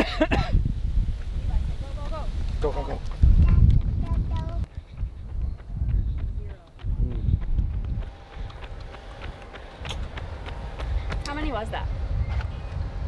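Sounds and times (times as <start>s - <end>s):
gusty wind on microphone: 0.0s - 13.0s
running footsteps on asphalt: 1.2s - 13.0s.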